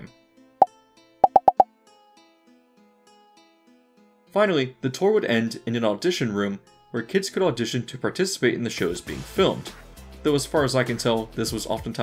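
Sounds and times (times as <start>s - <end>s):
cartoon pop sound effects: 1.2s - 1.6s.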